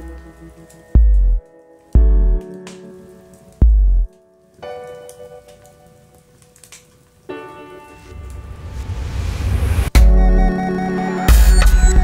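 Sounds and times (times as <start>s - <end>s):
faint crackles: 0.0s - 9.2s.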